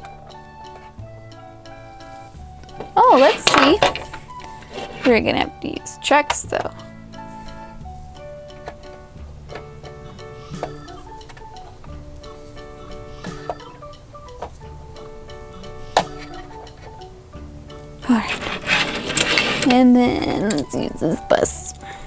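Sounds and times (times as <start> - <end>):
gentle background music: 0.0 - 22.0
toys clicking and knocking: 2.6 - 6.8, 8.5 - 12.0, 13.2 - 14.7, 15.9 - 17.1, 18.0 - 21.9.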